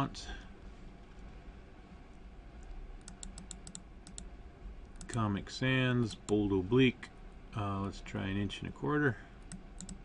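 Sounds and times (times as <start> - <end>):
low steady hum: 0.0 - 10.0
computer mouse clicks: 2.6 - 4.3, 4.9 - 5.2, 9.4 - 10.0.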